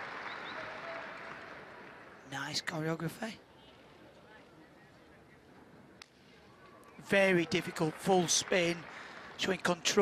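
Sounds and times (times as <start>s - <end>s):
audience applauding: 0.0s - 2.1s, 7.2s - 10.0s.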